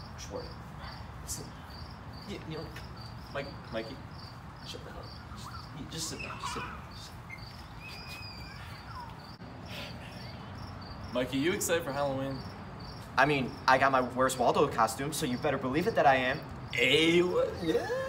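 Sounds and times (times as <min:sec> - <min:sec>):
insects chirping: 0:00.0 - 0:18.0.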